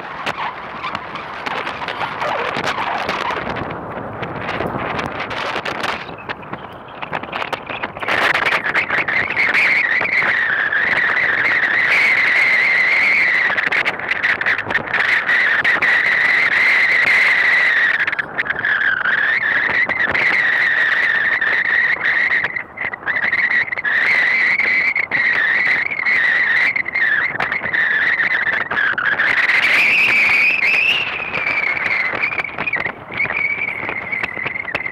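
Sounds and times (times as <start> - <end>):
high wavering whine: 0.0 - 34.9.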